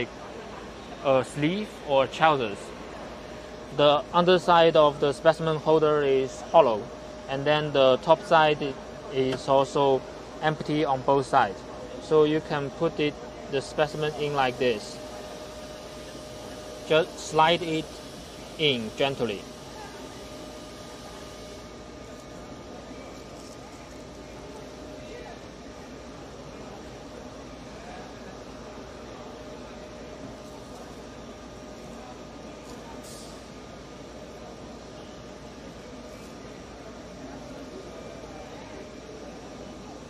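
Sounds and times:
exhibition hall hum and hiss: 0.0s - 40.0s
man speaking: 1.0s - 2.7s, 3.7s - 15.0s, 16.8s - 18.0s, 18.6s - 19.6s
distant chatter: 11.3s - 40.0s.

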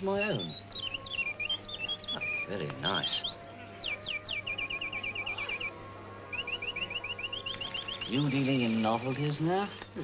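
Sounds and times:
mechanical bird whistling chirps: 0.0s - 9.0s.

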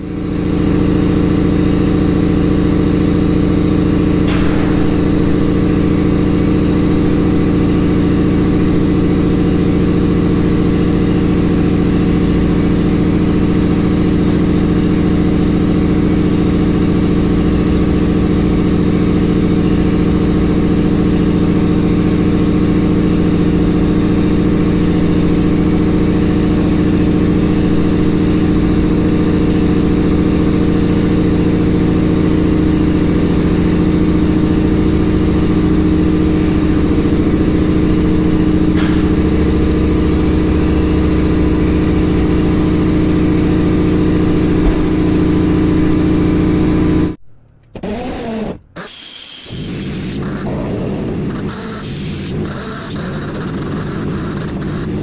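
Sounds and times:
vehicle engine droning: 0.0s - 47.8s.

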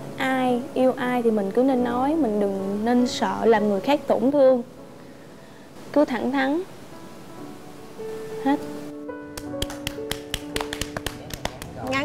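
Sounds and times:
background music with held notes: 0.0s - 12.0s
people clapping: 9.4s - 12.0s.

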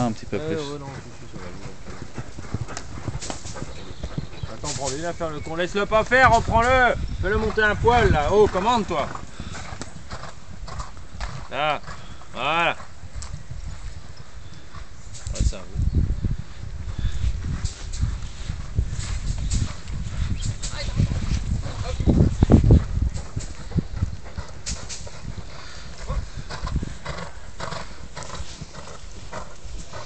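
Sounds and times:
horse hooves thudding on sand: 0.0s - 30.0s.

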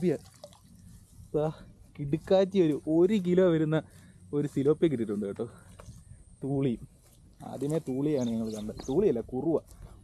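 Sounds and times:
man talking: 0.0s - 0.3s, 1.3s - 5.7s, 6.4s - 9.7s
water dripping into river: 0.0s - 1.1s.

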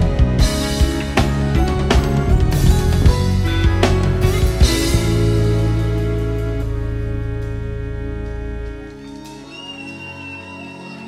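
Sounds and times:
live band soft chords: 0.0s - 9.5s.

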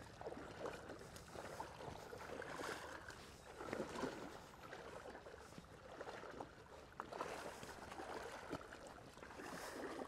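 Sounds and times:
splashing through shallow water: 0.0s - 10.0s.

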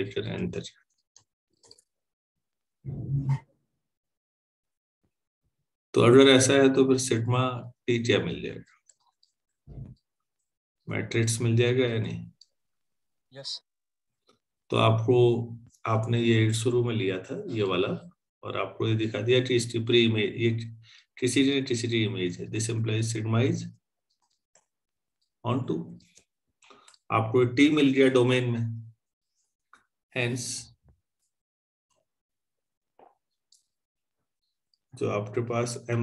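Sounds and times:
man speaking: 10.9s - 12.3s, 14.7s - 23.7s, 35.0s - 36.0s.

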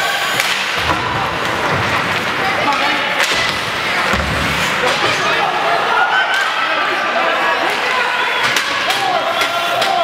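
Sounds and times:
hockey sticks clacking on puck: 0.4s - 5.4s, 7.6s - 10.0s
skate blades scraping ice: 3.6s - 5.4s.

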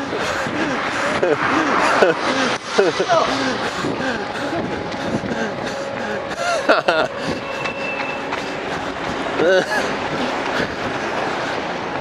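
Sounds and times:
passing traffic: 0.0s - 12.0s
person laughing: 0.1s - 7.5s, 9.4s - 10.9s.

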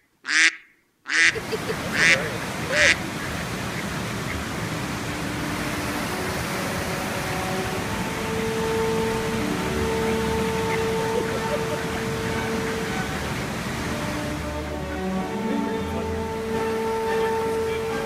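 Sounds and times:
steady background hiss: 0.0s - 18.0s
ducks quacking: 0.3s - 18.0s
soft orchestral music: 1.4s - 18.0s.

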